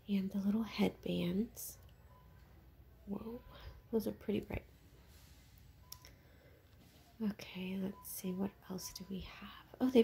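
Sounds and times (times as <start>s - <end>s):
short faint beep: 5.8s - 6.4s.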